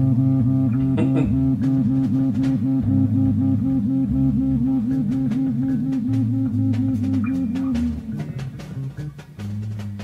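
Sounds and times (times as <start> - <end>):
bass line: 0.0 - 10.0
distorted electric guitar note wavering: 0.0 - 10.0
light drums: 4.5 - 10.0.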